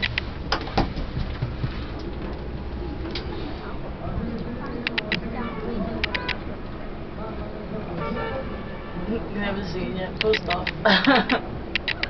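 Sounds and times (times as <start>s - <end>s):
sharp clicks and creaks: 0.0s - 1.4s, 4.3s - 5.2s, 6.0s - 6.4s, 10.2s - 12.0s.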